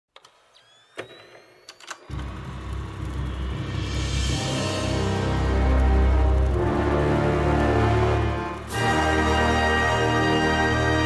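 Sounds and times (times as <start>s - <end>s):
faint rising whine: 0.6s - 8.7s
deep low drone: 2.1s - 11.0s.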